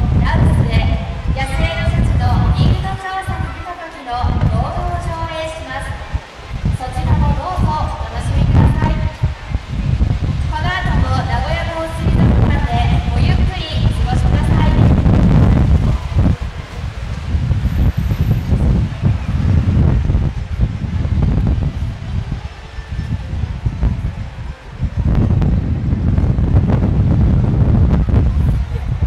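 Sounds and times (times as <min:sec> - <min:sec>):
wind buffeting microphone: 0:00.0 - 0:29.0
water splashing and churning: 0:04.2 - 0:26.7.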